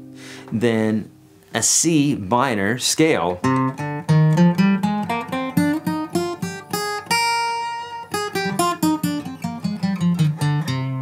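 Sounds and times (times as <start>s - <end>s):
acoustic guitar picking a scale: 0.0s - 11.0s.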